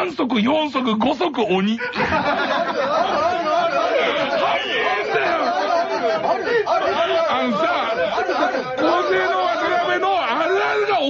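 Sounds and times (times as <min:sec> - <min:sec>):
several voices talking: 0:00.0 - 0:11.0.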